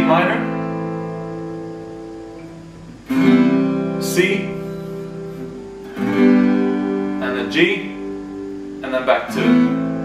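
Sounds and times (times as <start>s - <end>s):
acoustic guitar chord strums: 0.0s - 10.0s.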